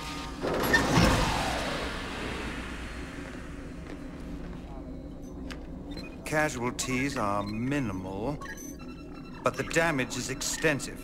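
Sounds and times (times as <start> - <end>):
faint background score: 0.0 - 11.0.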